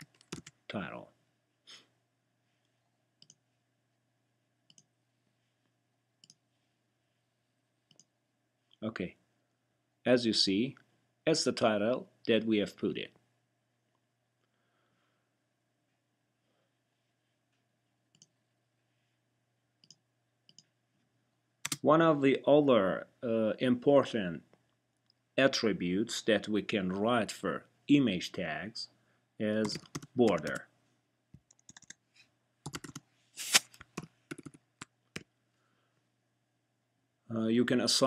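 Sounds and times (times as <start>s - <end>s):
man speaking: 0.7s - 1.1s, 8.8s - 9.2s, 10.1s - 13.1s, 21.7s - 24.4s, 25.4s - 30.6s, 37.3s - 38.0s.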